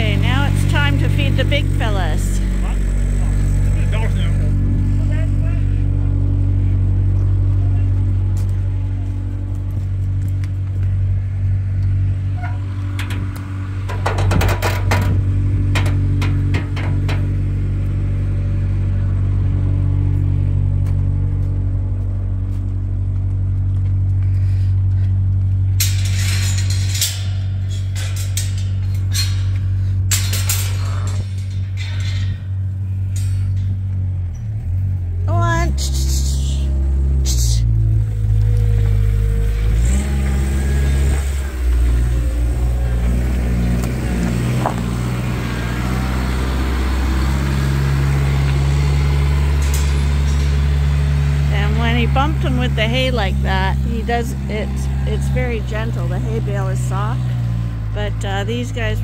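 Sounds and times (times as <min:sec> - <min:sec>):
tractor engine running: 0:00.0 - 0:59.0
clanking and rattling: 0:09.5 - 0:18.6, 0:24.8 - 0:35.3, 0:37.0 - 0:59.0.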